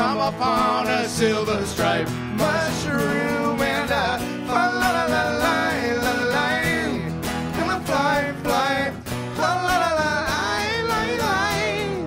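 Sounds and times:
acoustic guitars strumming: 0:00.0 - 0:12.0
men singing together: 0:00.0 - 0:12.0.

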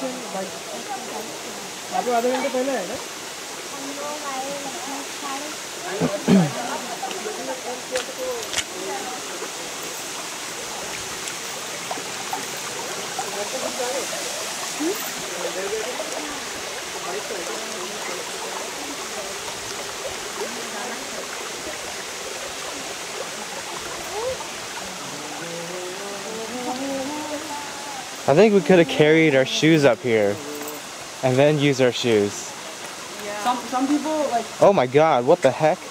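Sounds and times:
water running over rocks: 0:00.0 - 0:35.9.

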